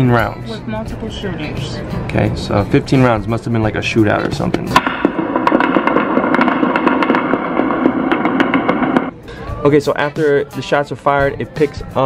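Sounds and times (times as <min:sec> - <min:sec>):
rapid gunshots: 0:04.8 - 0:09.1.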